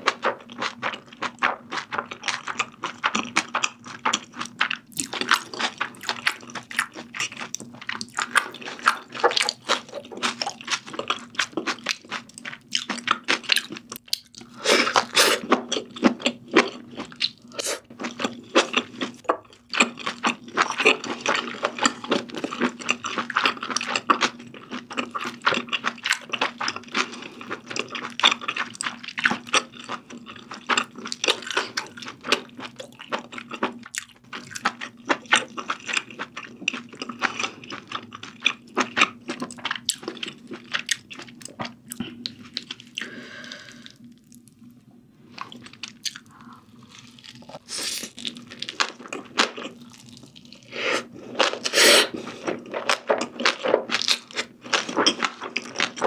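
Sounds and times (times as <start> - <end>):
chewing with mouth clicks: 0.0 - 44.7, 45.3 - 56.0.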